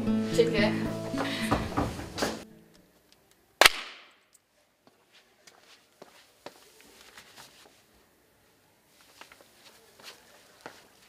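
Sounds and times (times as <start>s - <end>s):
loud sharp crack with ringing: 3.6s - 4.2s.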